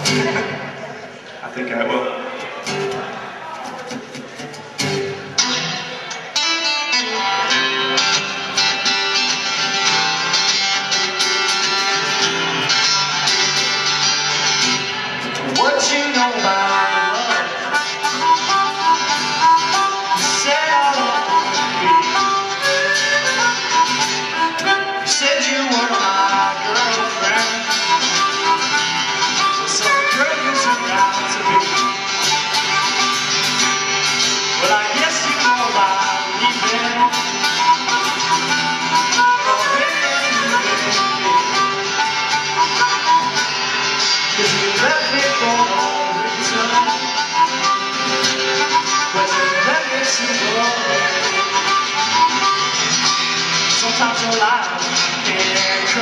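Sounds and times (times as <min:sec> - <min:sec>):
acoustic guitars strumming: 0:00.0 - 0:01.6, 0:02.2 - 0:56.0
harmonica playing: 0:05.4 - 0:56.0.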